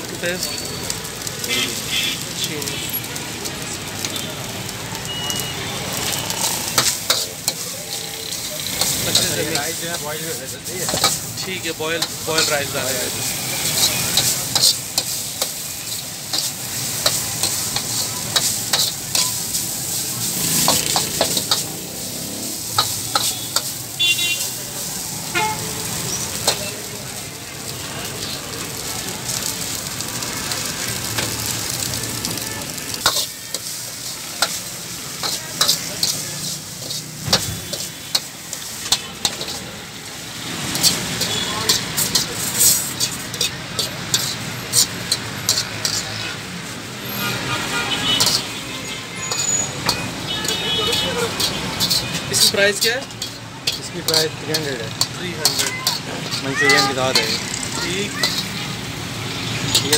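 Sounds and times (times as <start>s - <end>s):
oil sizzling: 0.0s - 59.9s
metal ladle clanking on wok: 48.2s - 48.5s, 51.4s - 52.1s.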